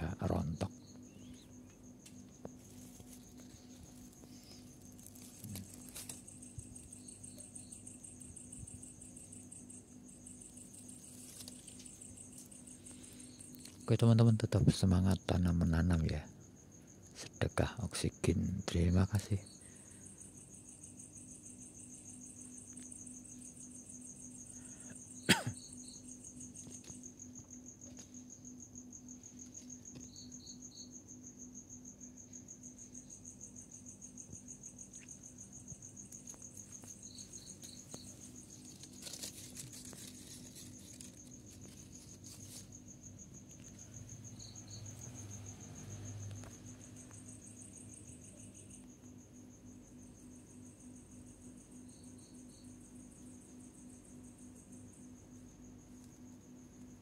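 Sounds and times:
crickets chirping: 0:00.0 - 0:57.0.

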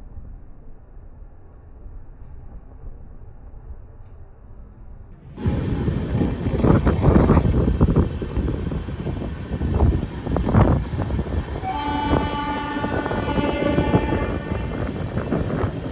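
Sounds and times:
train rumbling and clattering: 0:00.4 - 0:15.9
train horn: 0:11.4 - 0:15.9.

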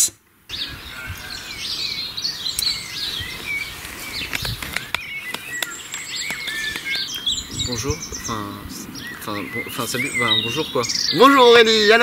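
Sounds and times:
songbirds chirping and singing: 0:00.5 - 0:12.0.

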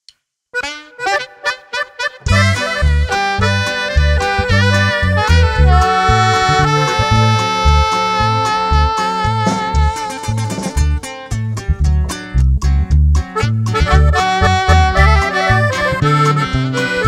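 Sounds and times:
button accordion melody: 0:00.6 - 0:11.1, 0:13.3 - 0:17.0
saxophone melody: 0:00.6 - 0:11.1, 0:13.4 - 0:17.0
bass and drum beat: 0:02.3 - 0:17.0.

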